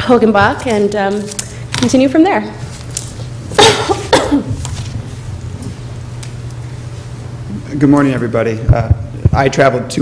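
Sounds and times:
person coughing: 3.6s - 4.6s.

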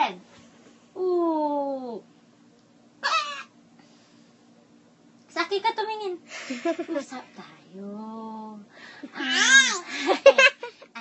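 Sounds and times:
infant squealing: 9.2s - 9.8s.

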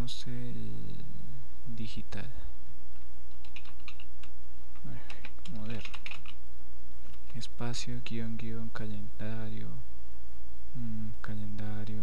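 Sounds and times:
low electrical hum: 0.0s - 12.0s
computer keyboard typing: 3.3s - 6.4s.

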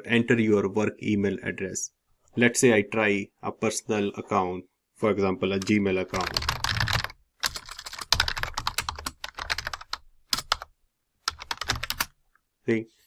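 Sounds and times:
typing on computer keyboard: 5.6s - 12.2s.

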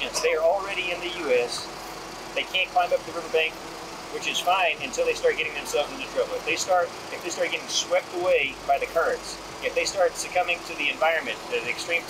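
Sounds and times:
man speaking: 0.0s - 1.7s, 2.4s - 12.0s
low background hum: 0.0s - 12.0s.

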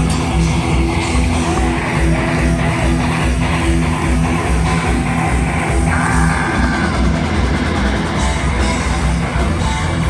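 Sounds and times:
distorted electric guitars: 0.0s - 10.0s
heavy metal band playing: 0.0s - 10.0s
steady drum beat: 0.0s - 10.0s.

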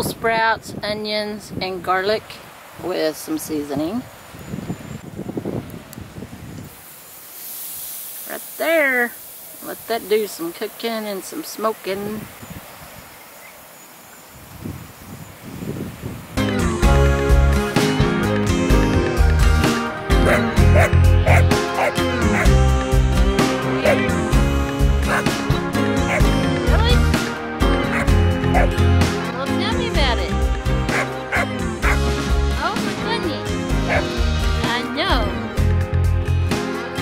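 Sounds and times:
wind on microphone: 0.0s - 6.8s, 12.0s - 13.3s, 14.1s - 16.6s
fish sizzling on a grill: 6.7s - 12.1s
background music: 16.4s - 37.0s
dog barking: 20.2s - 22.5s, 25.1s - 25.3s, 26.1s - 26.3s, 27.9s - 28.8s, 30.9s - 32.0s, 33.9s - 34.1s.

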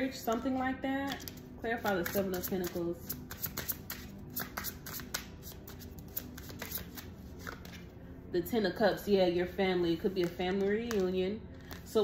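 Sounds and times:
cards shuffled by hand: 1.1s - 7.9s, 10.2s - 12.0s.

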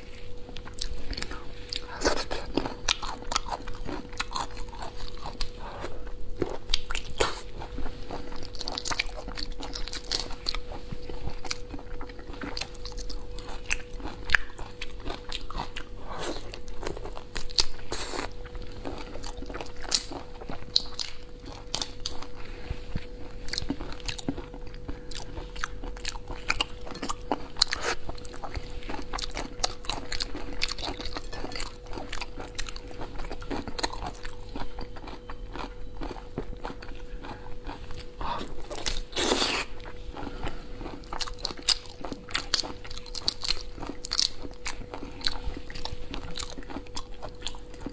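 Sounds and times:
faint steady hum: 0.0s - 47.9s
biting and chewing: 0.4s - 47.9s.

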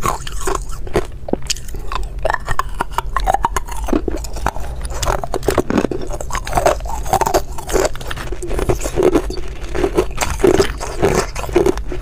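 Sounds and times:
ice being chewed: 0.0s - 12.0s.

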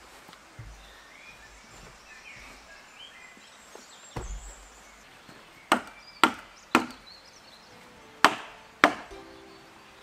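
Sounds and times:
faint bird chirps: 0.0s - 10.0s
dull thump: 4.1s - 5.0s.

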